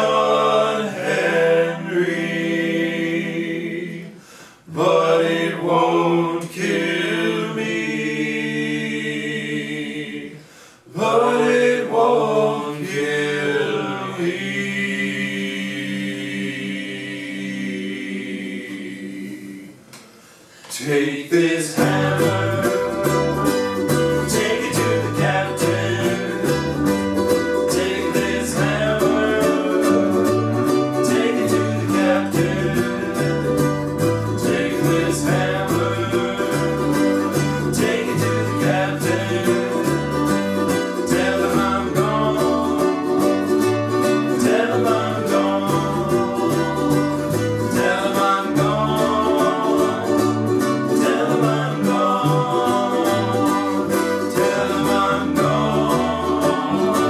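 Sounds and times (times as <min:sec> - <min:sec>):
men singing: 0:00.0 - 0:19.9, 0:20.7 - 0:57.0
ukuleles strumming and picking: 0:00.0 - 0:57.0
plucked bass line: 0:21.8 - 0:57.0.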